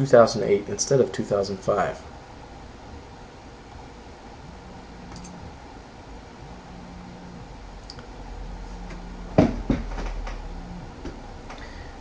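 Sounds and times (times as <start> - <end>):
low hum: 0.0 - 12.0
faint irregular clicks: 5.1 - 5.4.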